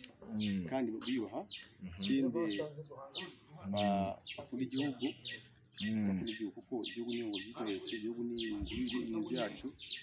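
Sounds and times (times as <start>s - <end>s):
man talking: 0.0s - 9.8s
small bird chirping: 0.0s - 10.0s.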